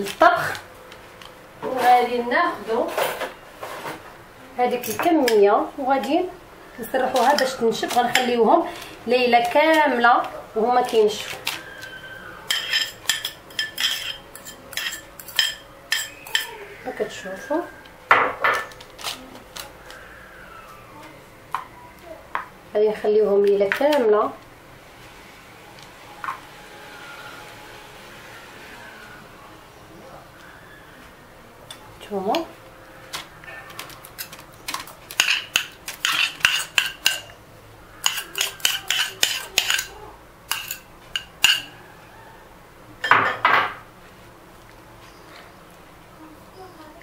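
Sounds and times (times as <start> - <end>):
metal fork scraping on tray: 12.5 - 16.5, 35.1 - 37.4, 38.0 - 39.9.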